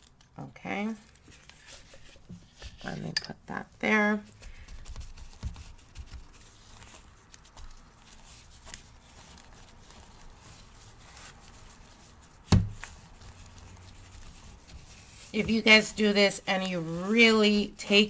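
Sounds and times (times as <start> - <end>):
gloved hands rubbing candle: 4.3 - 18.0.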